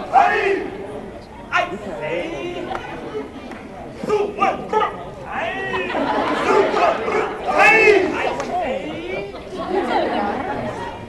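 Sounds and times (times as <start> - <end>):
voices shouting together: 0.0 - 3.4, 4.0 - 11.0.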